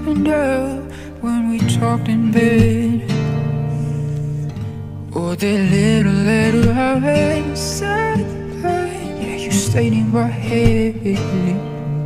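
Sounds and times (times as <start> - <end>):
acoustic guitar chord strummed: 0.0 - 12.0.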